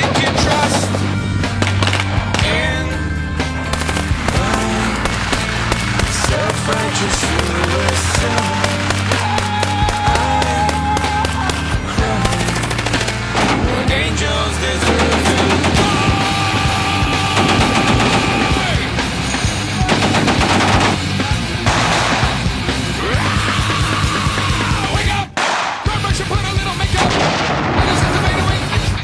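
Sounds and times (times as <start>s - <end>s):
machine-gun fire: 0.0s - 2.7s, 3.7s - 13.8s, 17.2s - 18.7s, 19.8s - 22.6s, 27.0s - 28.6s
loud music with held notes: 0.0s - 25.2s.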